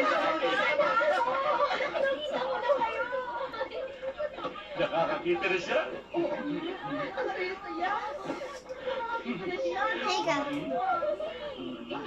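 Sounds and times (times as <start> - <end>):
group chatter through tv speaker: 0.0 - 12.0.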